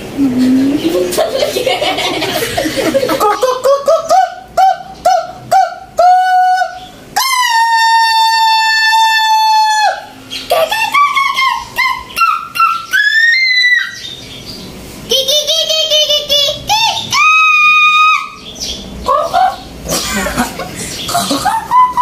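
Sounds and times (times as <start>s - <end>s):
man singing falsetto: 4.0s - 10.0s.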